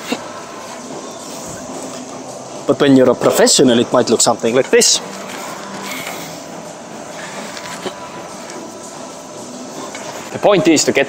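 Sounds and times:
gym hall room noise: 0.0 - 11.0.

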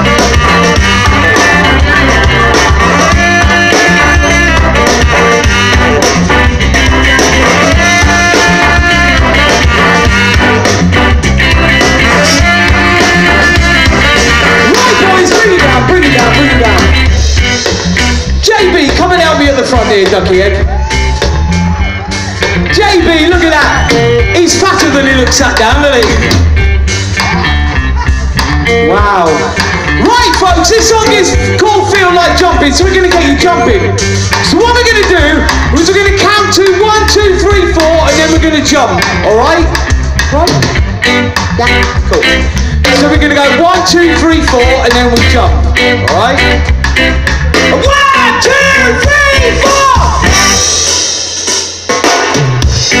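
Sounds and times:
singer's voice: 0.0 - 17.5, 18.3 - 26.4, 27.2 - 46.6, 47.6 - 50.6
live band playing: 0.0 - 53.0.

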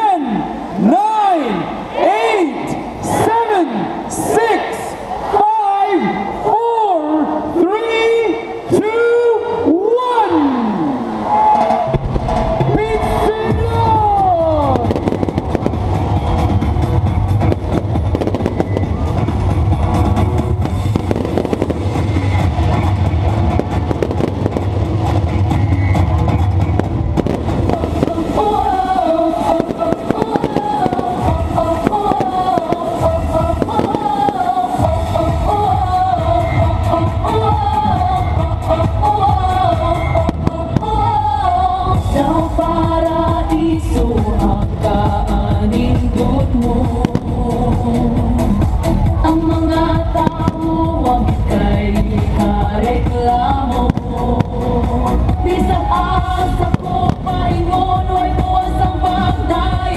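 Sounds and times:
festival music with heavy bass: 0.0 - 59.9
fireworks crackling and banging: 11.4 - 36.0, 40.2 - 41.4, 43.5 - 49.2, 49.9 - 59.9.

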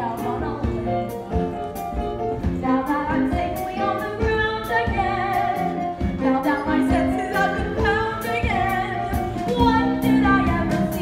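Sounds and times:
instrumental accompaniment: 0.0 - 11.0
women singing: 2.6 - 11.0.

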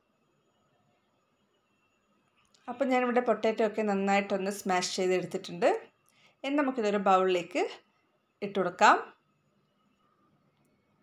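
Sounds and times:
woman speaking: 2.7 - 7.8, 8.4 - 9.2.

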